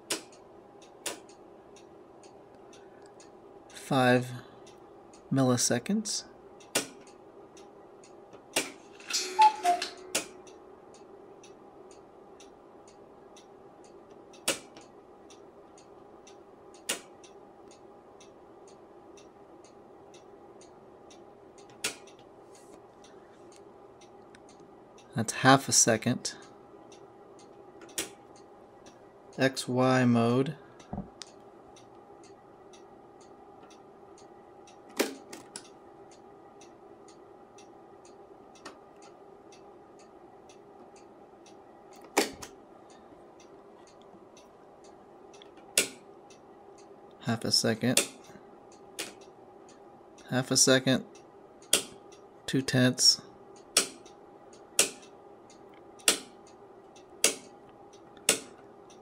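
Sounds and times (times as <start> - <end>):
rotary switch clicks: 0.0 - 3.3, 6.6 - 8.8, 9.4 - 22.3, 26.9 - 28.5, 45.3 - 46.9, 48.0 - 49.8, 51.6 - 52.3, 53.6 - 59.0
faint steady ticking: 0.0 - 8.6, 9.4 - 59.0
faint steady hum: 0.0 - 59.0
rotary switch clicking: 51.6 - 52.2, 53.7 - 56.5, 57.2 - 59.0.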